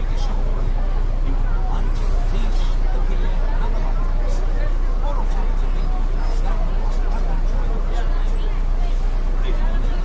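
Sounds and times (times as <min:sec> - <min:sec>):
bus engine rumbling: 0:00.0 - 0:10.0
indistinct chatter: 0:00.0 - 0:10.0.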